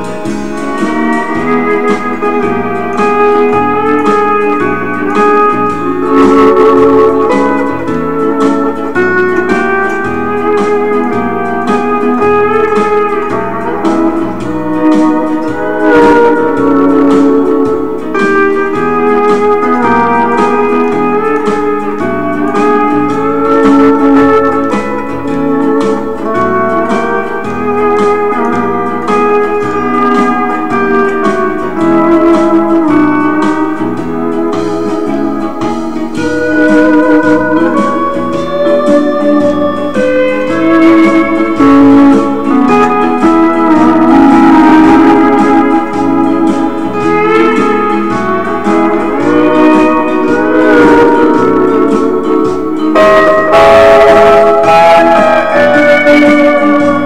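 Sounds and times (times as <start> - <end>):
backing track with bass rhythm: 0.0 - 57.0
steel guitar melody: 0.0 - 57.0.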